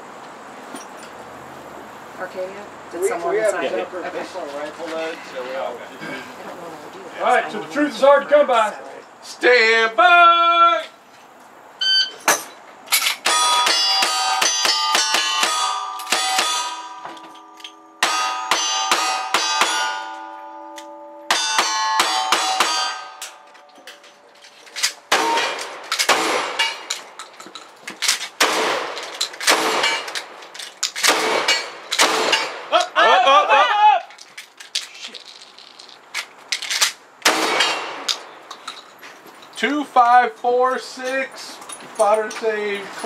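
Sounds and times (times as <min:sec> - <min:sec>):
steel targets ringing: 0:12.1 - 0:24.5, 0:25.1 - 0:27.2
revolver gunshots: 0:25.1 - 0:26.9, 0:28.4 - 0:30.4, 0:31.0 - 0:32.7, 0:37.2 - 0:38.4.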